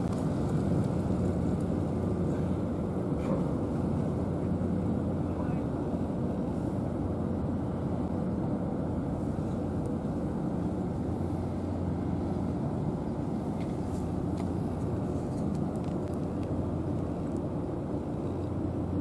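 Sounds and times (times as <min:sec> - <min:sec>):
faint hum: 0:00.0 - 0:19.0
low outdoor rumble: 0:00.0 - 0:19.0.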